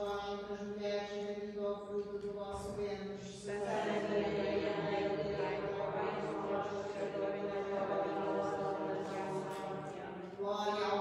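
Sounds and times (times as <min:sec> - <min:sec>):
person chanting: 0:00.0 - 0:11.0.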